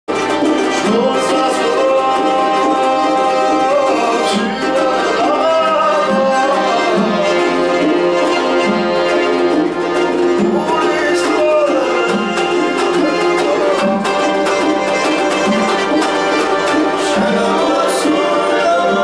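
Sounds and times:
folk band playing: 0.1s - 19.0s.

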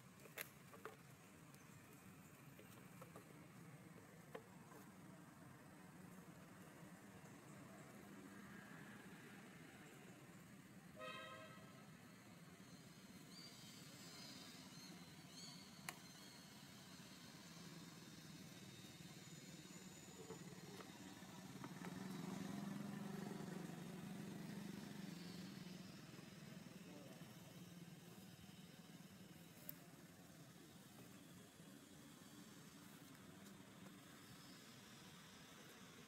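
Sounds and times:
distant vehicle engine drone: 12.1s - 36.0s.

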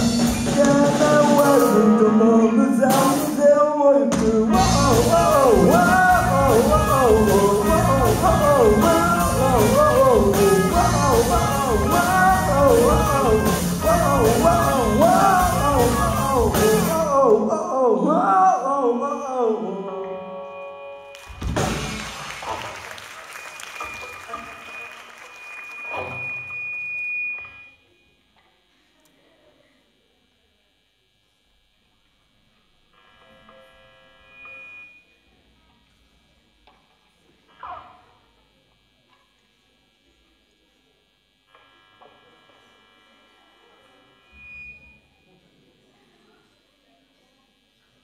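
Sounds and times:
live rock band playing: 0.0s - 3.5s, 4.1s - 17.2s
lead vocal singing: 0.0s - 20.7s.

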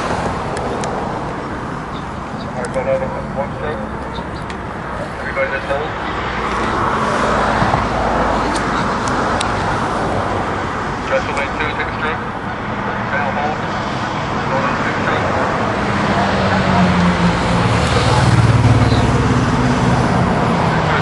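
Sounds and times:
engine humming: 0.0s - 21.0s
steady rushing noise: 0.0s - 21.0s.

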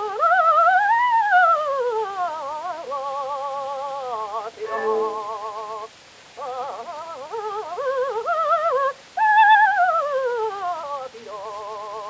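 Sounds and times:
operatic voice singing with vibrato: 0.0s - 12.0s
record surface hiss: 0.0s - 12.0s.

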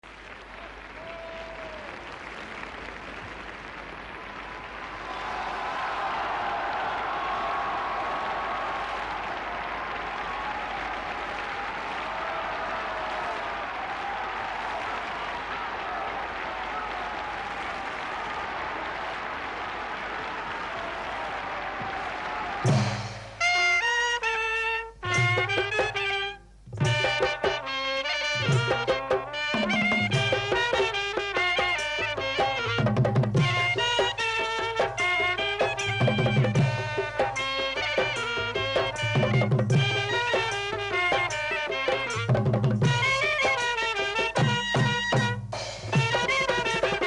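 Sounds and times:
trumpet and clarinet playing: 23.4s - 47.0s.

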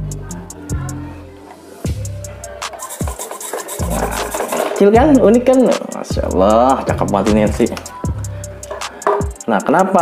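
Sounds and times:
background music with bass beat: 0.0s - 10.0s.

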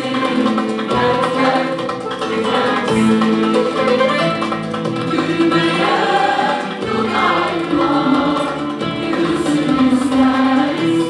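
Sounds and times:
mixed choir singing: 0.0s - 4.3s, 4.9s - 11.0s
acoustic guitar: 0.0s - 11.0s
hand drum: 0.0s - 11.0s
keyboard: 0.0s - 11.0s
violin: 0.0s - 11.0s.

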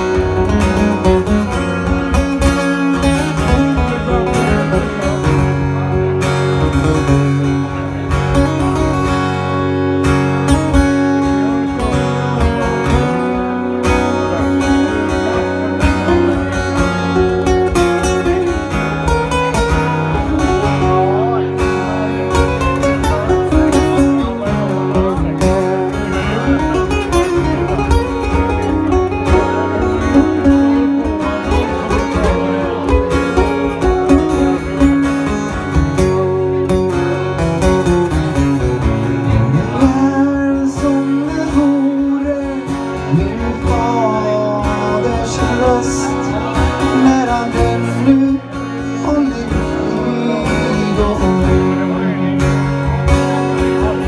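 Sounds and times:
acoustic guitars strumming: 0.0s - 54.0s.

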